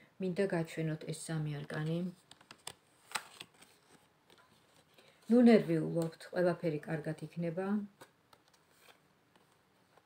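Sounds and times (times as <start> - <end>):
cards sliding and snapping: 2.3 - 4.9.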